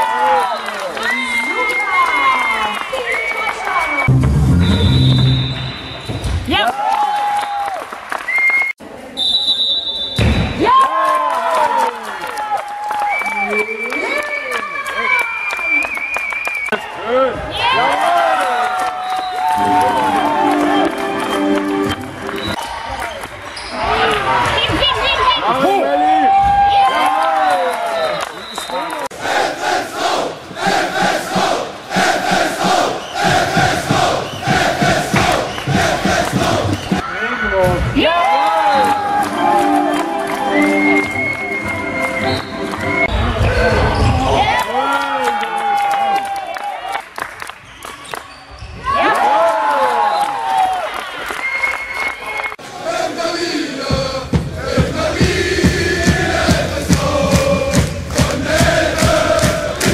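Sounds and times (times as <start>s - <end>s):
crowd cheering and shouting: 0.0s - 8.0s, 10.5s - 15.4s, 16.7s - 47.1s, 48.6s - 59.9s
whistle blast: 3.9s - 6.4s, 8.3s - 10.6s
crowd chanting in unison: 29.1s - 37.0s, 52.6s - 59.9s
sharp claps: 56.5s - 59.9s.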